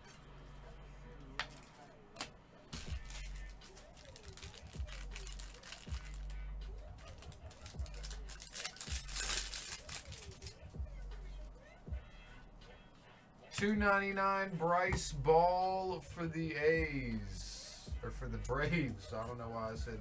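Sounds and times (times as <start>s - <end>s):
foil wrapper crinkling and tearing: 2.7s - 10.7s
background music with bass beat: 2.8s - 20.0s.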